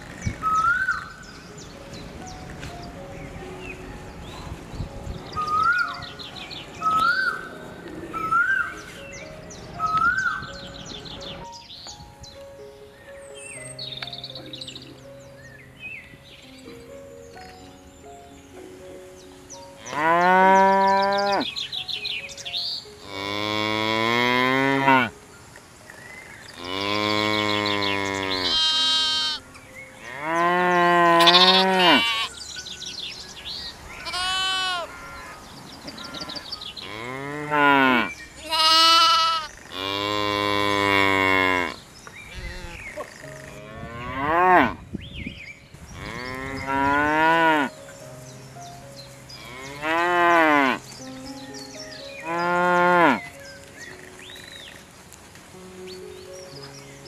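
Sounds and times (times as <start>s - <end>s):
cattle mooing: 26.6s - 29.4s, 30.0s - 32.3s.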